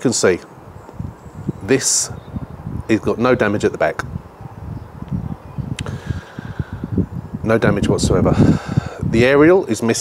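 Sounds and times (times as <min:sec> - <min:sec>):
wind buffeting a microphone: 0:00.5 - 0:10.0.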